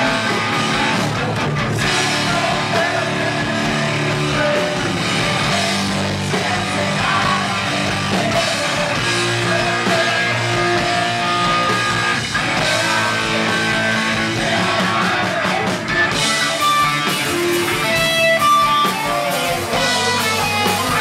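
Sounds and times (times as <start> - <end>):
amplified electric guitar: 0.0 - 21.0
live rock band playing: 0.0 - 21.0.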